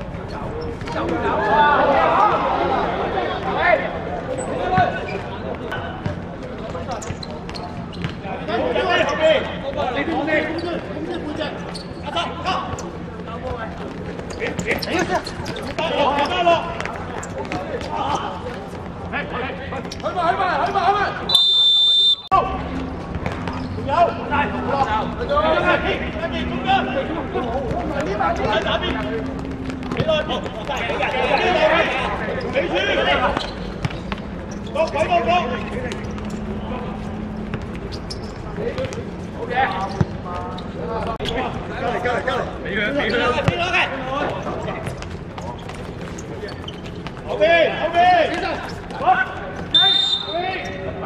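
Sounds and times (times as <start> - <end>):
players calling and shouting: 0.0 - 51.0
referee's whistle blast: 21.3 - 22.3, 49.7 - 50.4.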